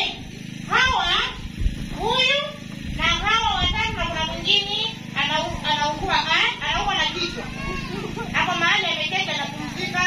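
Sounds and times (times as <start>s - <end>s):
woman talking over sound system: 8.3s - 10.0s.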